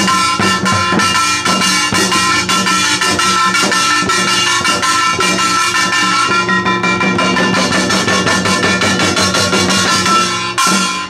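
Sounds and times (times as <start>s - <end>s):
fast traditional drumming: 0.0s - 11.0s
steady ringing tones: 0.0s - 11.0s.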